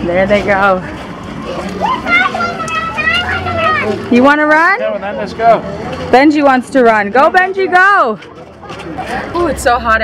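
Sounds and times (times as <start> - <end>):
low street noise murmur: 0.0 - 10.0
children talking and calling out: 0.8 - 4.2.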